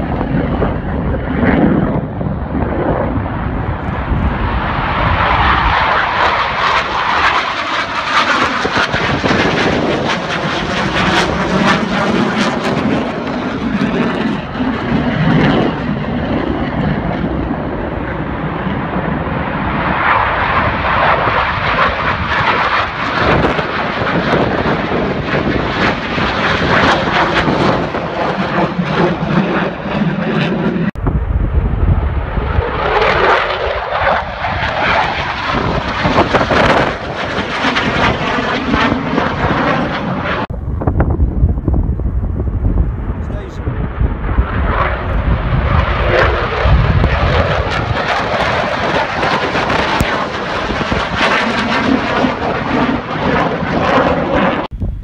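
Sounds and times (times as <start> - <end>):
fighter jet flying past: 0.0 - 55.0.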